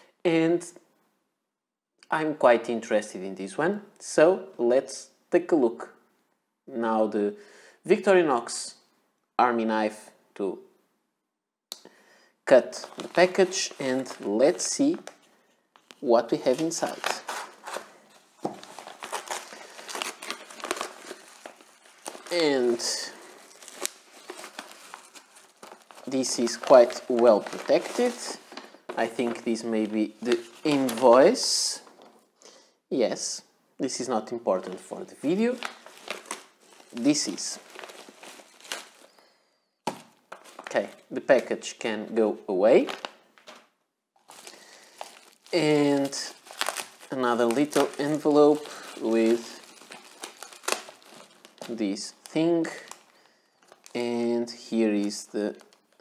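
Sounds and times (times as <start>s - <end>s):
plastic film crinkling: 12.6s - 32.2s, 34.6s - 39.2s, 39.9s - 41.5s, 42.7s - 56.0s.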